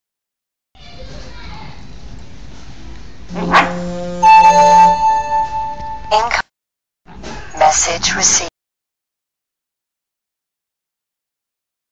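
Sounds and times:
steady held musical tones: 3.2s - 6.4s
dog barking: 3.4s - 3.8s.

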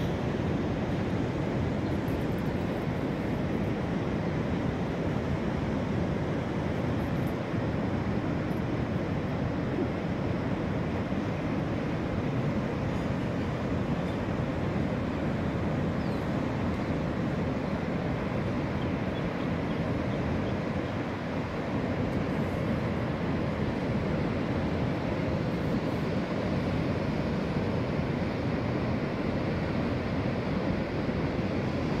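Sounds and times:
ocean surf breaking: 0.0s - 32.0s.

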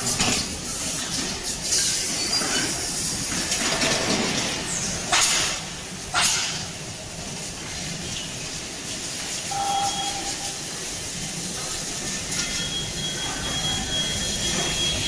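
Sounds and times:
conveyor machinery noise: 0.0s - 15.0s
brief machine squeal: 9.5s - 10.6s, 12.4s - 15.0s
thin high whine: 9.5s - 10.6s.

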